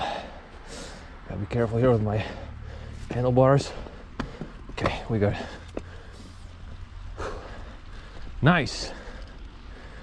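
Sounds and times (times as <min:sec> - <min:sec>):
bike rolling on dirt trail: 0:01.4 - 0:10.0.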